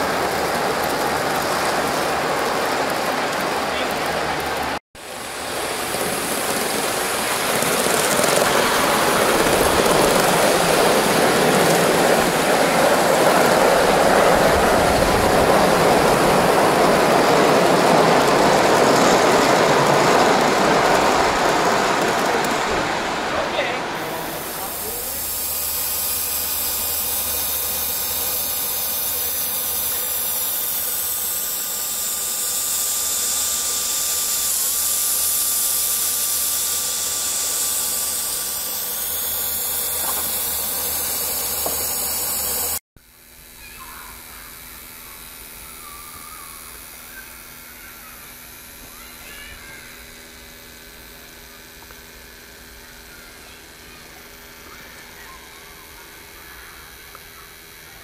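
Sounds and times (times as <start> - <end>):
loud steam hiss: 0.0 - 42.8
thin steady tone: 23.5 - 42.8.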